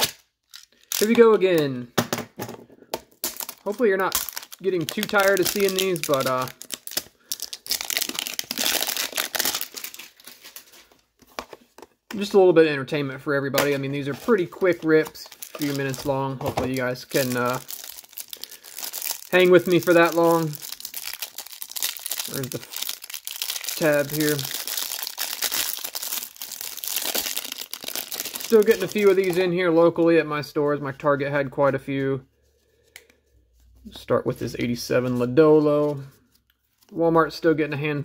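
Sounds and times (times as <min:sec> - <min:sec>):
plastic shrink-wrap crinkling and tearing: 0:00.0 - 0:01.3, 0:03.2 - 0:11.0, 0:14.0 - 0:29.5.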